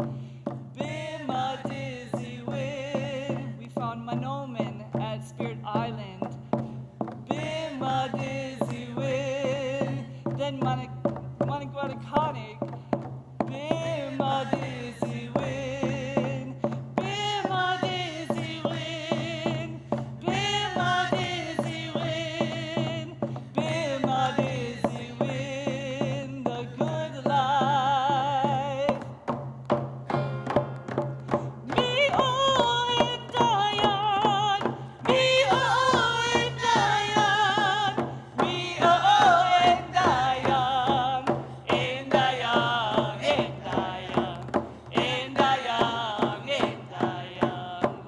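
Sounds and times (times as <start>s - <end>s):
hand drums beating: 0.0s - 48.0s
women singing together: 0.8s - 12.6s, 13.5s - 29.1s, 31.6s - 48.0s.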